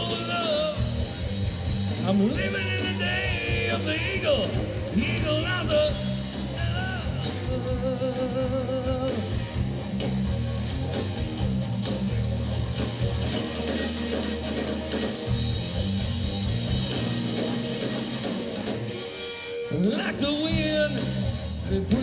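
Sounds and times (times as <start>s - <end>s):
drum kit with cymbals: 0.0s - 22.0s
electric bass: 0.0s - 22.0s
overdriven electric guitar: 0.0s - 22.0s.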